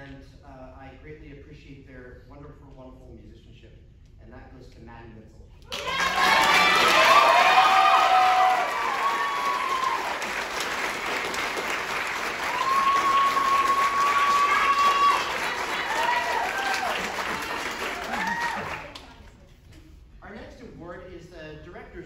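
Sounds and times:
audience applauding: 0:05.7 - 0:19.3
long held whoop: 0:05.8 - 0:10.2, 0:12.4 - 0:17.2, 0:18.0 - 0:18.8.

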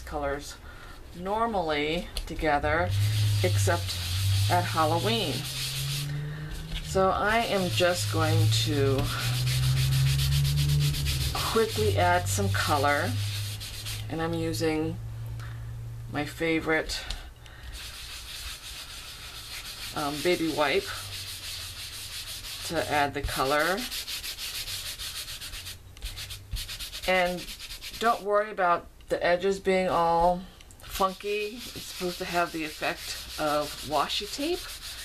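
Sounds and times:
wipe scrubbing over tape: 0:02.7 - 0:14.1, 0:17.7 - 0:28.2, 0:30.9 - 0:35.0.

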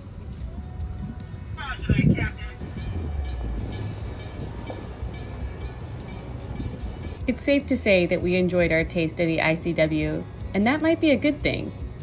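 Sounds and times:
boat motor rumbling: 0:00.0 - 0:10.2.

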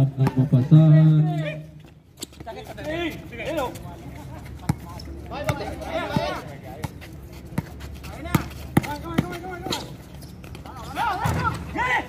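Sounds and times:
faint players' voices: 0:00.0 - 0:12.0.

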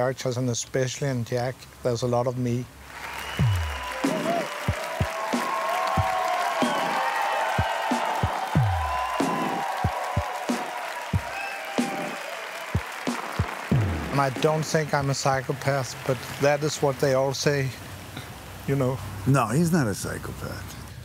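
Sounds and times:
audience applauding: 0:02.8 - 0:17.4
deep booming music hits: 0:13.7 - 0:14.4.

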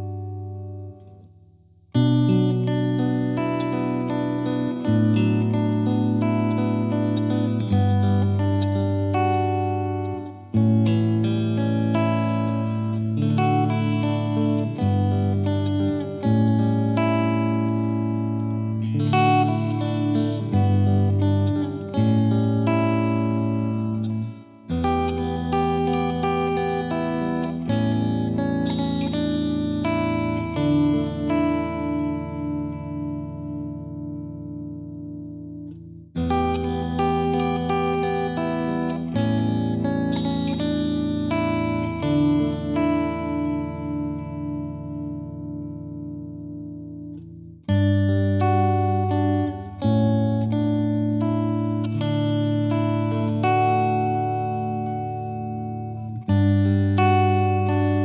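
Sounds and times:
plucked-string instrumental music: 0:02.0 - 0:58.0.

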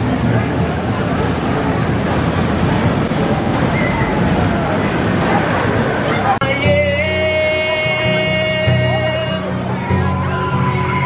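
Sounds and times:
roller coaster wheels rumbling on rail: 0:00.0 - 0:11.0.

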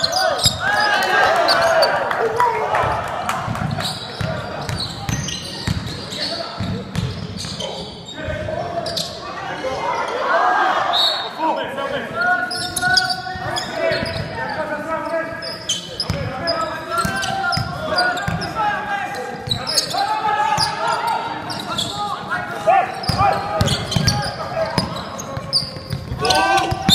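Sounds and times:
voices calling out: 0:00.0 - 0:26.9.

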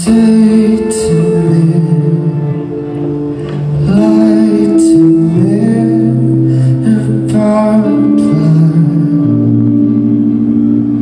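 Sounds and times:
rock band holding a chord: 0:00.0 - 0:11.0.

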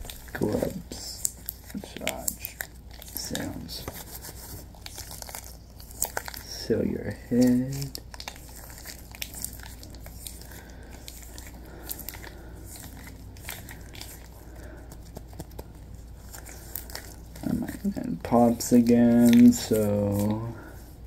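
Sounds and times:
latex gloves crinkling: 0:00.0 - 0:21.0.

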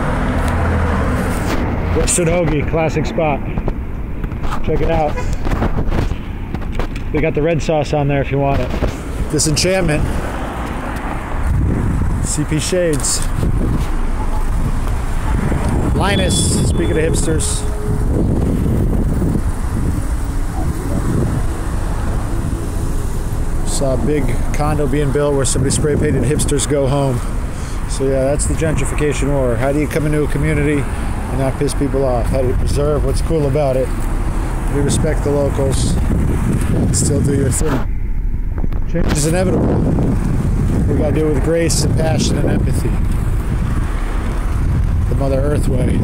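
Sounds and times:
car engine and road noise: 0:00.0 - 0:46.0
low steady engine hum: 0:00.0 - 0:46.0
wind buffeting microphone: 0:00.0 - 0:46.0.

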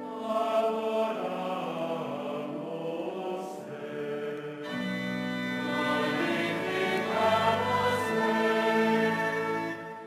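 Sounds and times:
choir singing sacred music: 0:00.0 - 0:10.0
instrumental accompaniment: 0:00.0 - 0:10.0.

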